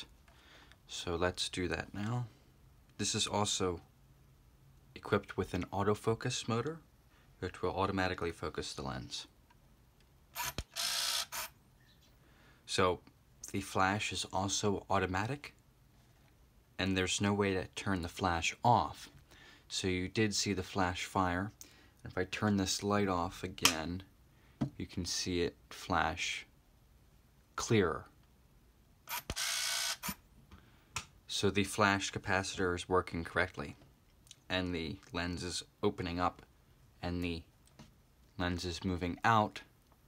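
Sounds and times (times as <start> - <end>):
camera motor whir: 10.4 - 11.6, 29.1 - 30.2.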